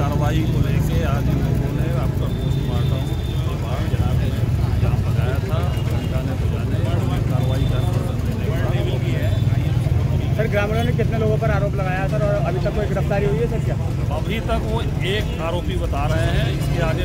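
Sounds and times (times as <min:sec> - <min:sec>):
crowd of people talking: 0:00.0 - 0:17.0
road traffic engine rumble: 0:00.0 - 0:17.0.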